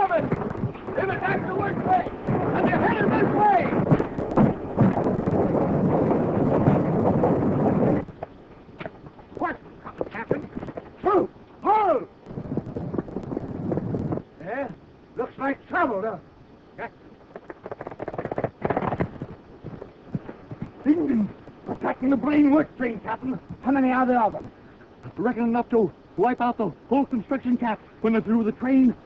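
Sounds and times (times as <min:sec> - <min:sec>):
heavy noise: 0:00.0 - 0:15.3.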